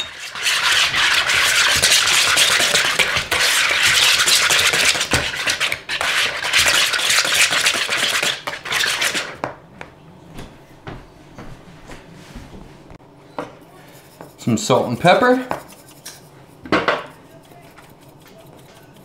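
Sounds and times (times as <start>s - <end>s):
wire whisk scraping in plastic bowl: 0.0s - 9.4s, 13.8s - 19.0s.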